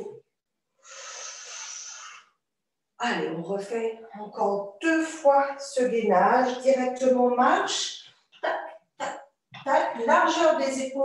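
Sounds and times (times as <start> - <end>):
person exhaling: 0.8 - 2.3.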